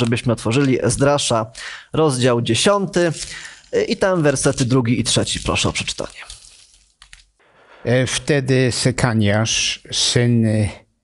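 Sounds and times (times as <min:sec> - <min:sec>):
man reading aloud: 0:00.0 - 0:06.4, 0:07.8 - 0:10.9
man speaking: 0:00.0 - 0:06.4, 0:07.6 - 0:10.9.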